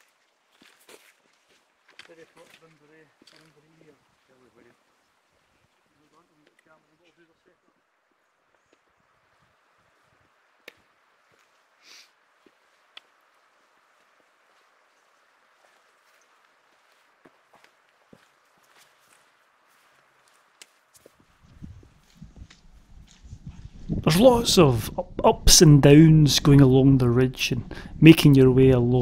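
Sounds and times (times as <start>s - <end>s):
faint footsteps: 0.0s - 24.2s
quiet hiss: 0.0s - 29.0s
trekking poles clicking on rock: 1.8s - 3.6s, 20.2s - 23.5s
low microphone rumble: 21.4s - 29.0s.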